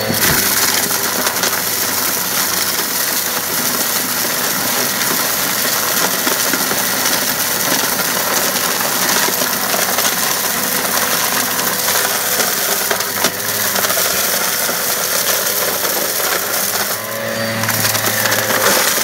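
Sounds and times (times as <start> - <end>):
debris rattling through hose: 0.0 - 19.0
upright vacuum running: 0.0 - 19.0.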